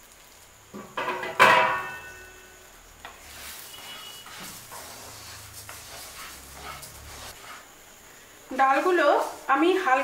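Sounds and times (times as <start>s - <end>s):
spatula scraping lentils in pan: 3.0s - 7.8s, 8.6s - 9.9s.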